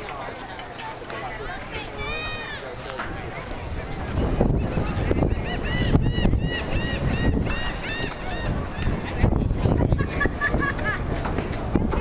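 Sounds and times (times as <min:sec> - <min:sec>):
wind rumble on microphone: 0:03.0 - 0:12.0.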